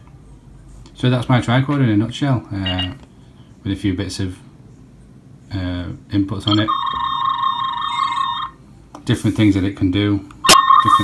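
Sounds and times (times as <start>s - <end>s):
warbling electronic scanning tone: 6.5s - 8.6s, 10.5s - 11.0s.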